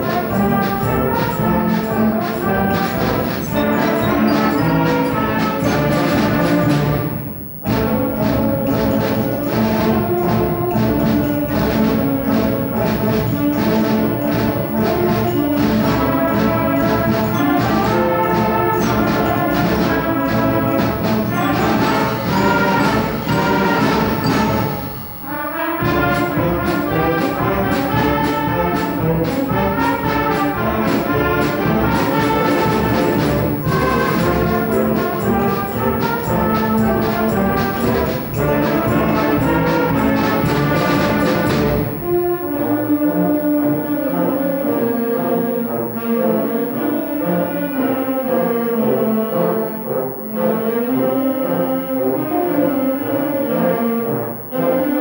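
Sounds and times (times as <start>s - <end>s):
concert band playing: 0.0s - 55.0s.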